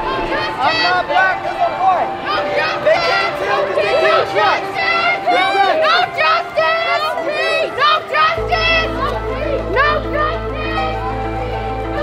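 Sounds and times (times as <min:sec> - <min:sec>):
high-pitched voices shouting: 0:00.0 - 0:12.0
background music with bass: 0:08.4 - 0:12.0.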